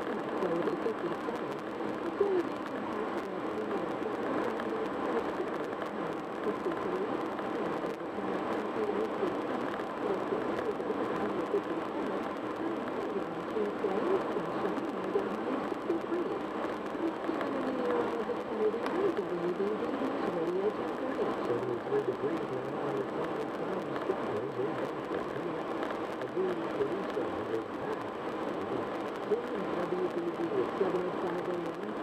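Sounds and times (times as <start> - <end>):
muffled radio talk: 0.0 - 32.0.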